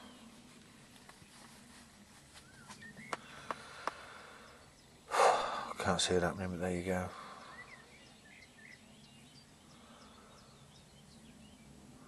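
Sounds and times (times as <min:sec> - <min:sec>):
bird chirps: 0:02.4 - 0:11.8.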